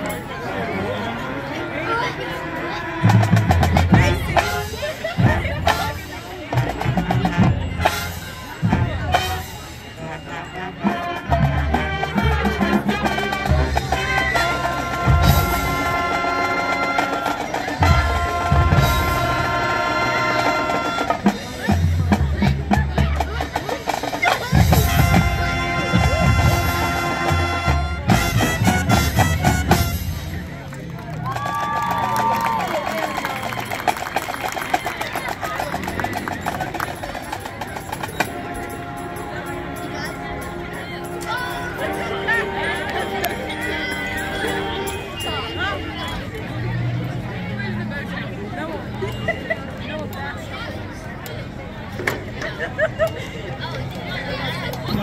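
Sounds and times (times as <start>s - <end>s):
brass holding long chords: 0.8s - 6.1s, 9.1s - 21.3s, 24.8s - 30.4s, 38.4s - 45.3s.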